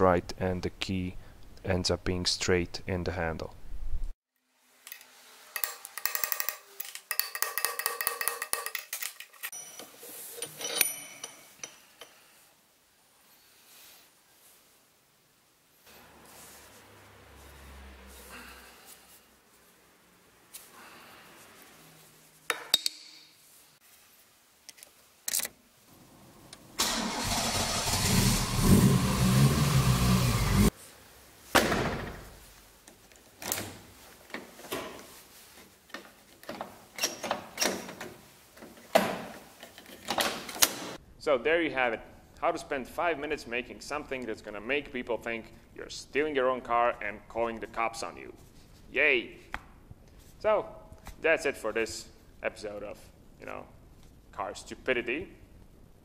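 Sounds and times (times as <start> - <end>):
car engine cranking and starting: 26.8 - 30.7.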